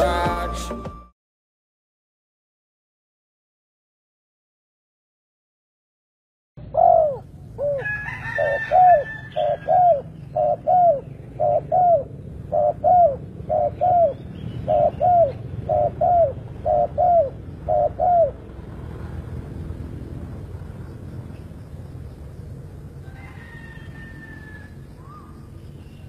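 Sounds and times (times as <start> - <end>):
dove cooing: 6.6 - 18.6
steady low rumble: 9.3 - 26.0.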